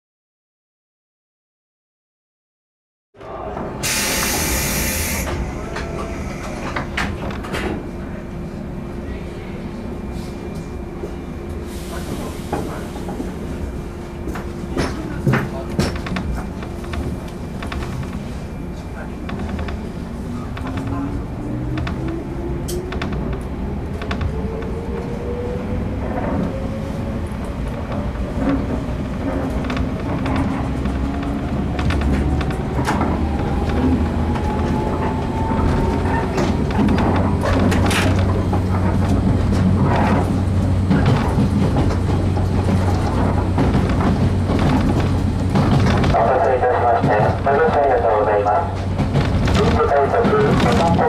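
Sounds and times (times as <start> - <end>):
compressed air hiss from train: 3.8 - 5.4.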